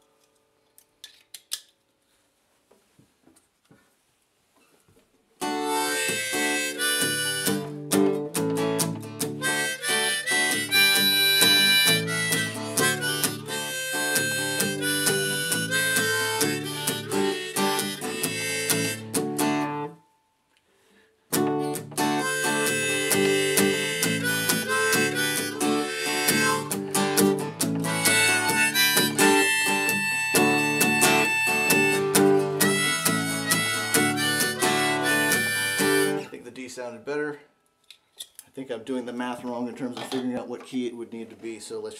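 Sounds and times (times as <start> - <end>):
harmonica playing: 5.4 - 20.0, 21.5 - 36.4
acoustic guitar strumming: 5.4 - 20.2, 21.3 - 36.4.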